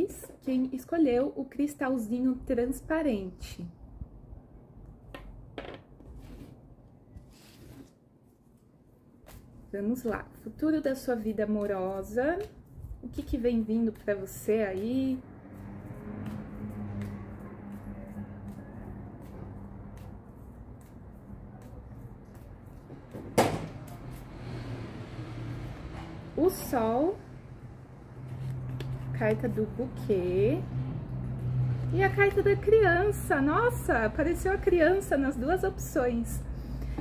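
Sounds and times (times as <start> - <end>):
cards being shuffled: 28.3 - 29.1.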